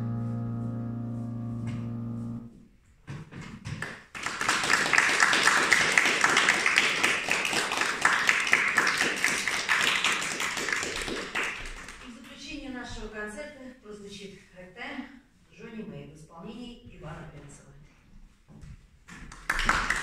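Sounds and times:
piano chord: 0.0 - 2.6
audience applause: 4.1 - 12.0, 19.4 - 20.0.

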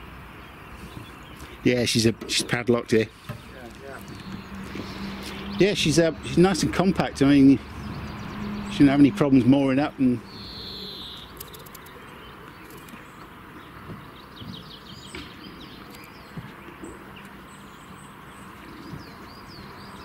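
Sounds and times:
small birds chirping: 0.0 - 20.0
steady outdoor hiss: 0.0 - 20.0.

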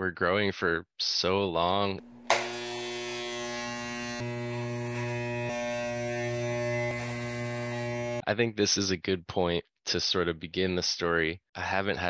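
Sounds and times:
electric hair clippers buzzing: 2.1 - 8.2
hair clippers switch click: 2.3 - 2.7.

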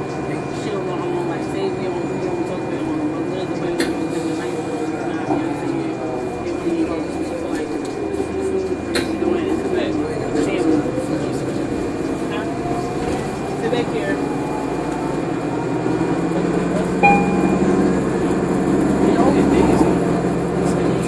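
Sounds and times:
passenger chatter: 0.0 - 21.0
bus engine humming: 11.5 - 20.8.

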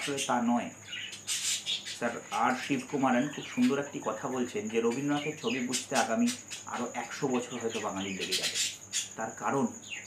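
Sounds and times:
man talking: 0.0 - 0.8, 2.0 - 9.8.

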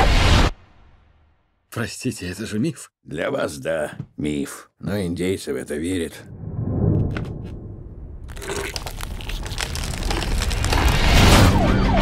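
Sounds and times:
crackling rising noise: 6.2 - 12.0
siren wailing: 11.1 - 12.0.

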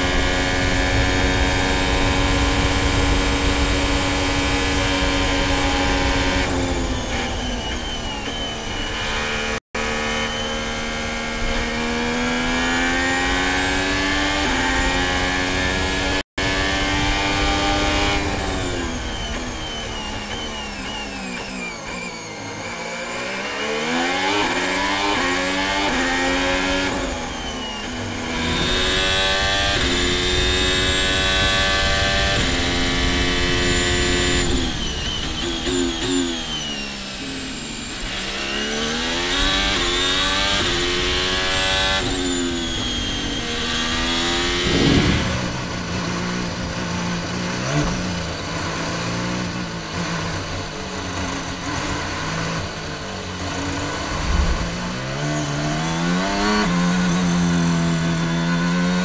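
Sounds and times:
race car engine at high revs: 0.0 - 59.0.

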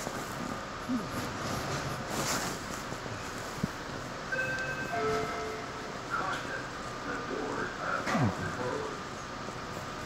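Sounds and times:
train car interior noise: 0.0 - 10.0
high-pitched tones: 4.3 - 5.9.

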